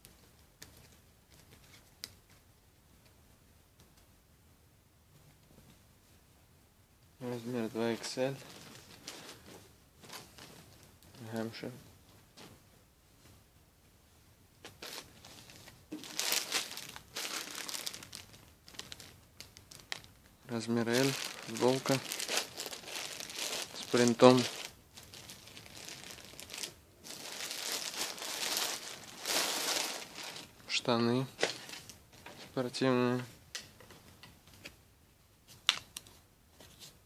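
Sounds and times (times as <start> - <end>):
clothing and tag rustling: 7.3 - 13.4, 14.6 - 33.2
plastic bag crinkling: 8.0 - 9.5, 14.8 - 30.6, 31.3 - 32.4.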